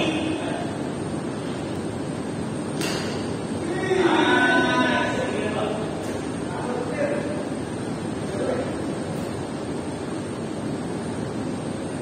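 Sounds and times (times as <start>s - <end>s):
racket hitting shuttlecock: 2.8s - 3.4s
player shouting: 3.6s - 5.2s.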